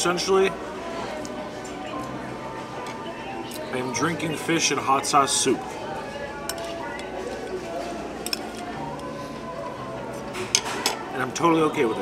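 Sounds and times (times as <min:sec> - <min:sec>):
background music: 0:00.0 - 0:12.0
murmur of voices: 0:00.0 - 0:12.0.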